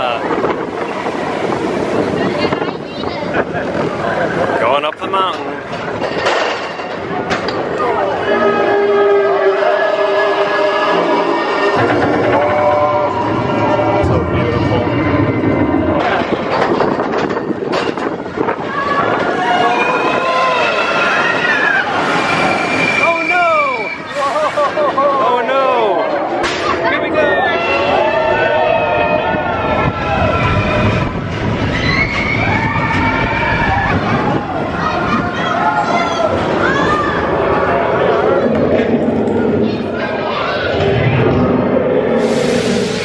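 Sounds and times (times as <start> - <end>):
roller coaster train rattling on track: 0.0 - 43.0.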